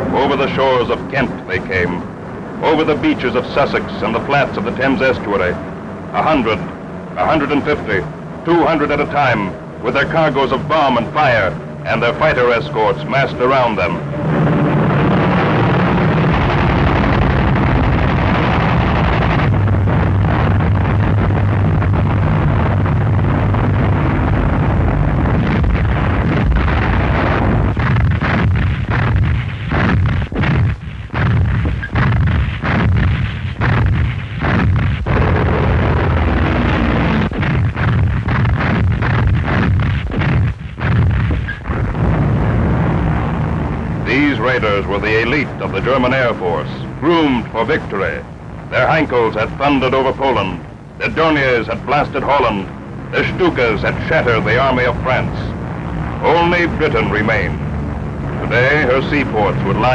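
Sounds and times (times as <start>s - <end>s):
aircraft engines droning: 0.0s - 38.3s, 40.6s - 59.9s
anti-aircraft gunfire and shell bursts: 6.2s - 43.3s, 44.0s - 55.5s.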